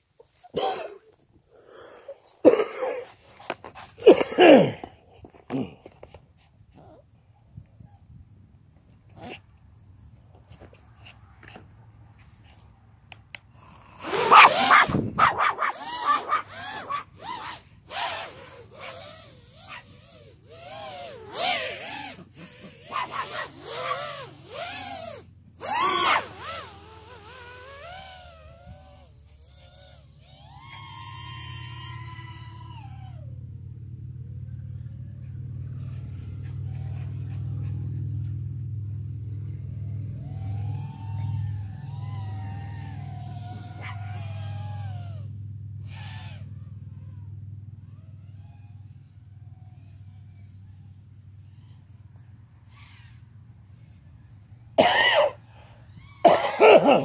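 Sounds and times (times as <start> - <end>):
drone motor hum: 13.8 - 33.8, 34.7 - 47.2
dog barking and yelping: 14.0 - 20.2, 20.9 - 26.7, 35.2 - 38.4, 42.6 - 44.5.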